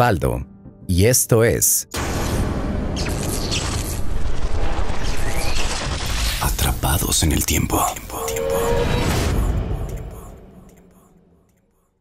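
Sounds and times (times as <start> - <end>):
man's voice echoing: 6.4 - 9.0.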